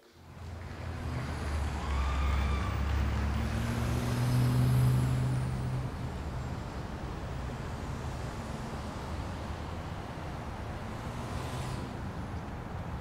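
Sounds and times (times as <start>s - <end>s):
passing vehicle engine drone: 0.2s - 12.4s.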